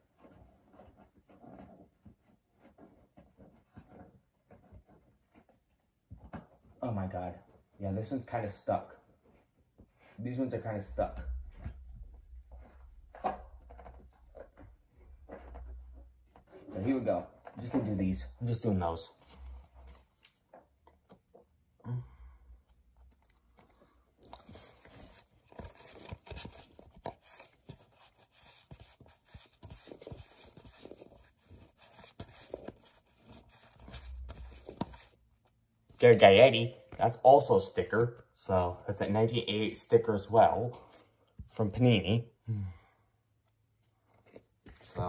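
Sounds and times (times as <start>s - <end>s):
trading cards clicking and rustling: 22.8s - 35.2s, 35.9s - 38.2s.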